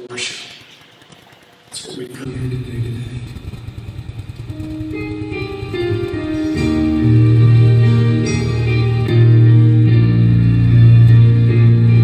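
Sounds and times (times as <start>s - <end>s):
held higher notes: 2.3s - 12.0s
guitar strumming: 3.6s - 12.0s.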